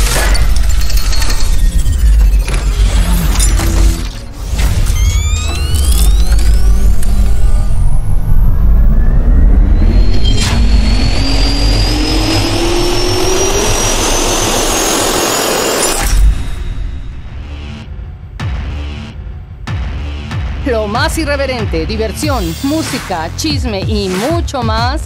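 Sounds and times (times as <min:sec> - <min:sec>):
sharp hit: 0:00.0 - 0:18.5
low rumble: 0:00.0 - 0:18.6
jet engine whine rising: 0:01.3 - 0:17.6.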